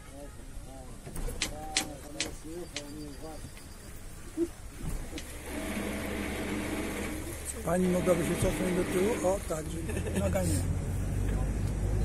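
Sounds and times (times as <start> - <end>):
voices talking: 0.0 - 12.0
boat engine hum: 4.3 - 12.0.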